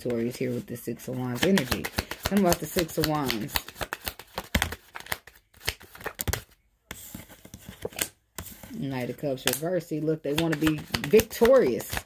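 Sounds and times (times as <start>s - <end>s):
card rustling: 0.0s - 9.6s, 10.2s - 12.0s
cards shuffling: 0.0s - 9.6s, 10.2s - 12.0s.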